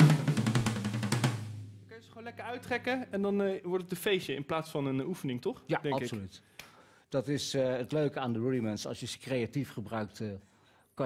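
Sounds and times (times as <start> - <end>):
drum roll on toms: 0.0 - 1.8.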